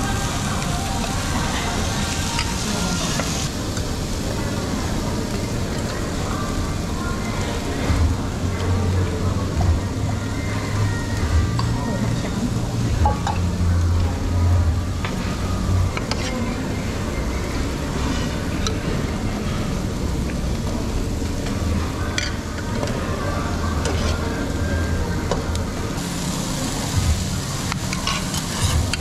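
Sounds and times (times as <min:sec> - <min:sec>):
low extractor hum: 0:00.0 - 0:29.0
steady sizzle: 0:00.0 - 0:29.0.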